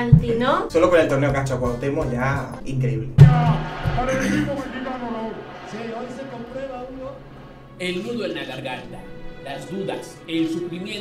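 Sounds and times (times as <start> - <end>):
melodic background music: 0.0 - 11.0.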